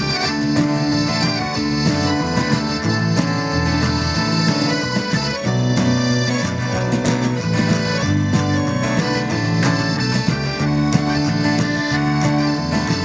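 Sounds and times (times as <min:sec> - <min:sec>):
accordion chords: 0:00.0 - 0:13.0
clicking wooden hand percussion: 0:00.0 - 0:13.0
electric bass notes: 0:00.0 - 0:13.0
strummed acoustic guitar: 0:00.0 - 0:13.0.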